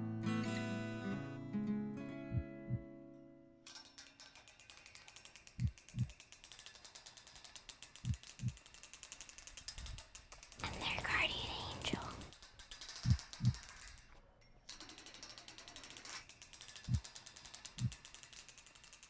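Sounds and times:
mechanical clockwork ticking: 0:04.8 - 0:10.7, 0:12.1 - 0:13.8, 0:15.0 - 0:19.0.

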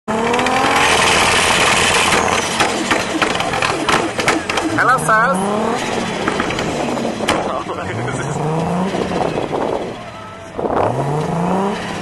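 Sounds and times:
car engine revving: 0:00.1 - 0:12.0
exhaust pops and crackles: 0:00.2 - 0:09.9.

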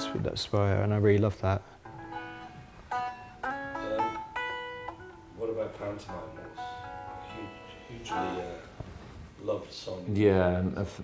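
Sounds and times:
electric guitar picked notes: 0:01.8 - 0:08.9.

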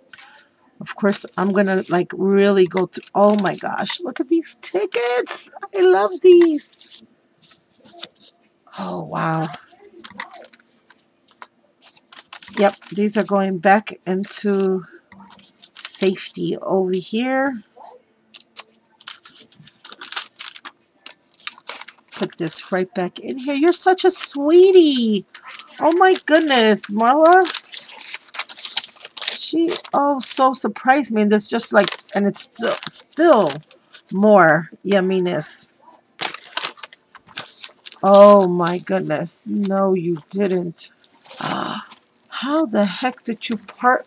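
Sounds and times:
paper and packaging crinkling: 0:00.0 - 0:44.0.

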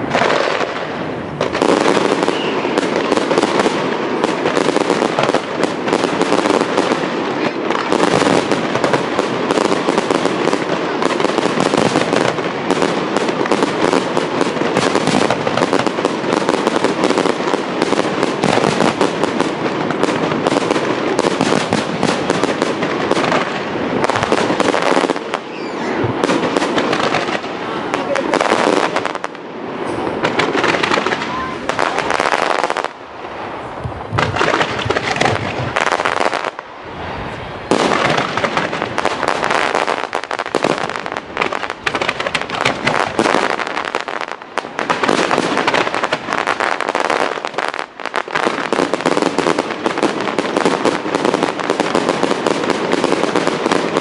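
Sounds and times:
fireworks bangs and crackles: 0:00.0 - 0:54.0.

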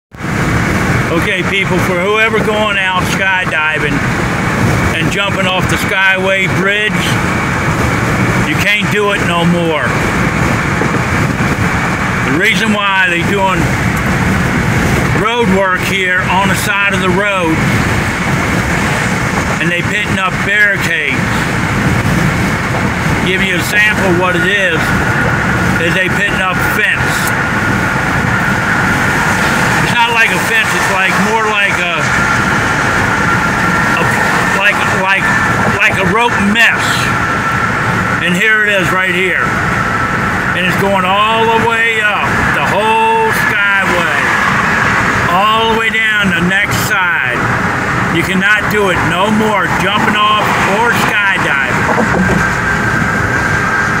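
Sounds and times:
car road and tyre noise: 0:00.1 - 0:54.0.

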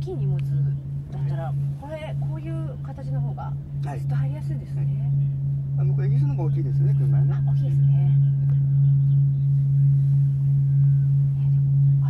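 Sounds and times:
pulsing low electronic sine tone: 0:00.0 - 0:12.0.

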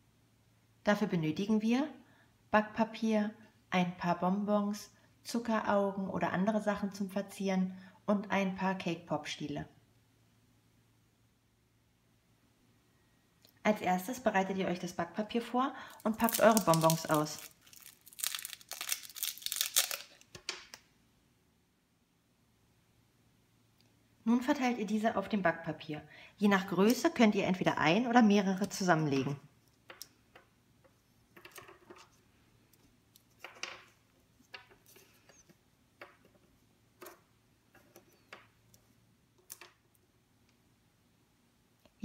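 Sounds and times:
candies clicking on paper: 0:15.9 - 0:20.8
plastic wrapper crinkling: 0:15.9 - 0:20.8.

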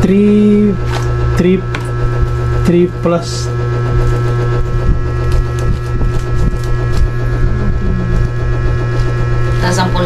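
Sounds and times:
loud electrical hum: 0:00.0 - 0:10.0.

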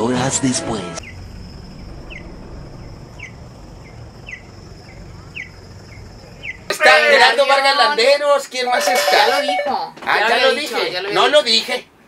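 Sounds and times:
bird chirping: 0:01.0 - 0:06.7
faint high whine: 0:01.0 - 0:06.7
low background rumble: 0:01.0 - 0:06.7.

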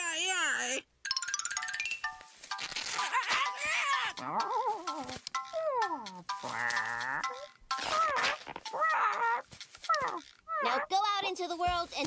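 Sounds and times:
light music: 0:01.0 - 0:12.0.

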